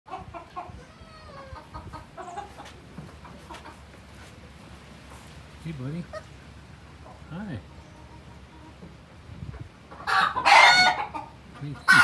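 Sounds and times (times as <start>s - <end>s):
barnyard animals calling: 0.1s - 12.0s.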